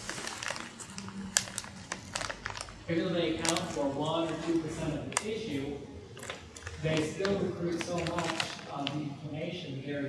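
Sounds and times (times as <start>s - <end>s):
person speaking: 0.8s - 10.0s
sharp crinkling clicks: 6.2s - 9.0s.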